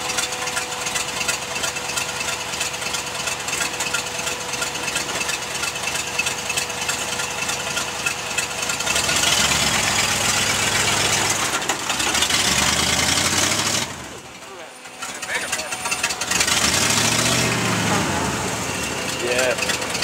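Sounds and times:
off-road vehicle engine: 0:00.0 - 0:20.0.

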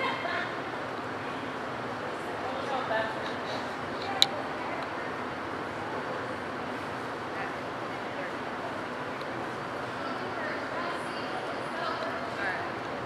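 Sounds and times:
indistinct background voices: 0:00.0 - 0:13.0.

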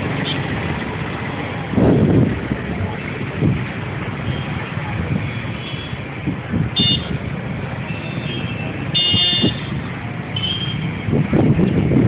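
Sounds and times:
road traffic noise: 0:00.0 - 0:12.0
vehicle horn honks: 0:06.8 - 0:07.1, 0:07.9 - 0:09.7.

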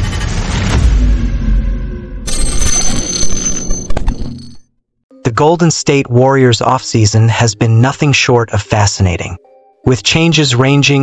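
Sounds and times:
bell-like ringing shimmer: 0:02.3 - 0:04.6.

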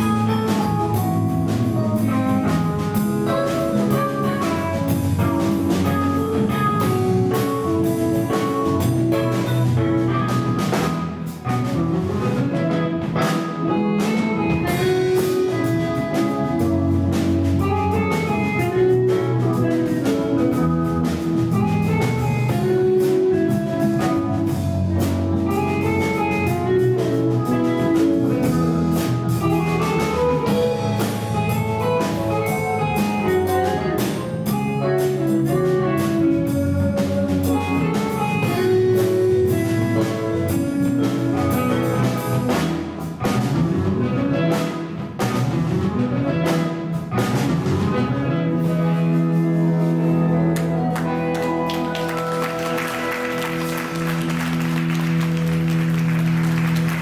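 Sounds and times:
drum kit beat: 0:00.0 - 0:57.0
electric bass: 0:00.0 - 0:57.0
electric guitar: 0:00.0 - 0:57.0
keyboard: 0:00.0 - 0:57.0.

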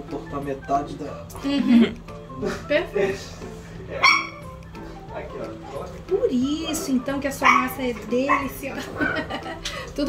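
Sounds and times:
high-pitched dog yip: 0:04.0 - 0:04.5, 0:07.4 - 0:08.5.

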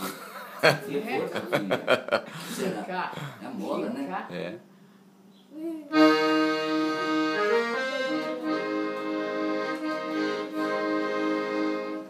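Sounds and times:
accordion playing: 0:05.9 - 0:12.0.

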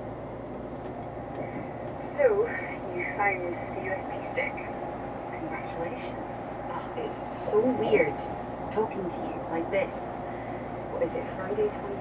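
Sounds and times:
vehicle road and engine noise: 0:00.0 - 0:12.0.

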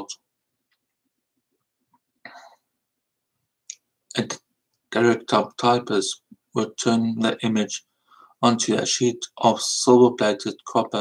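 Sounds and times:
speech: 0:00.0 - 0:00.3, 0:04.1 - 0:11.0.

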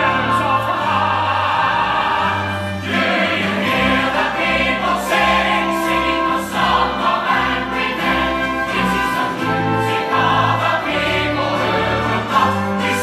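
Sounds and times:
cast singing as a choir: 0:00.0 - 0:13.0
orchestral accompaniment: 0:00.0 - 0:13.0.

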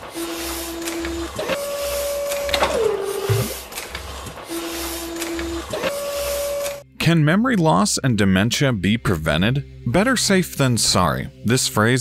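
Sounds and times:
robotic motor whines: 0:00.0 - 0:03.7.

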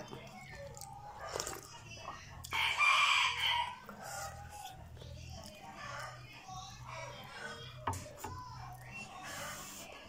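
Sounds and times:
rooster crowing: 0:02.5 - 0:03.9.

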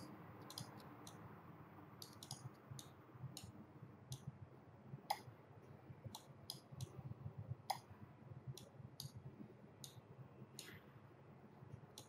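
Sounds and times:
low room hum: 0:00.0 - 0:12.0
computer mouse clicks: 0:00.4 - 0:01.2, 0:02.0 - 0:03.5, 0:06.1 - 0:07.0, 0:10.6 - 0:10.8.

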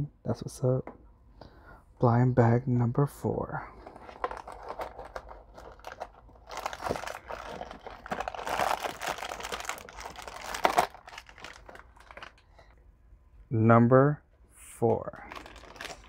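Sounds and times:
foil packet crinkling: 0:03.8 - 0:12.8, 0:15.2 - 0:16.0
packet torn open by hand: 0:04.2 - 0:12.4, 0:15.3 - 0:16.0.

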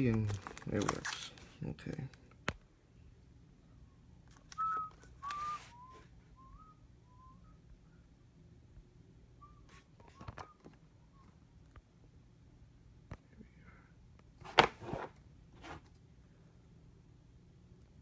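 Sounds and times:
person whistling softly: 0:04.5 - 0:08.0, 0:09.4 - 0:11.4.

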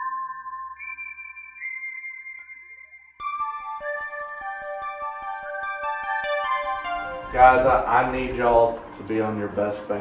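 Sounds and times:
high synthesizer notes: 0:03.2 - 0:09.8.

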